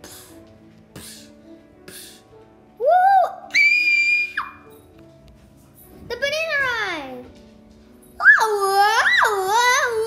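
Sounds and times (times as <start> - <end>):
faint background music: 0.0 - 10.0
child making sound effects: 8.2 - 10.0.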